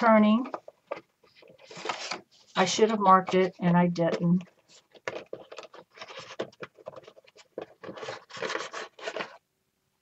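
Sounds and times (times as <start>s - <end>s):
paper mache scraping and rustling: 0.3s - 9.4s.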